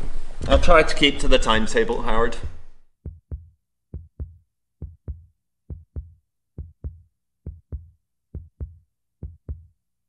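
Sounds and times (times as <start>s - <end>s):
heartbeat double thump: 3.0s - 9.7s.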